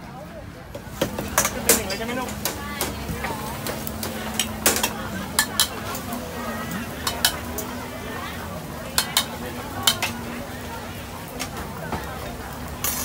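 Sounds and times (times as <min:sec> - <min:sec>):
food frying: 0:00.8 - 0:13.0
metal utensil clanking in pan: 0:01.1 - 0:06.1, 0:07.0 - 0:07.7, 0:09.0 - 0:10.2.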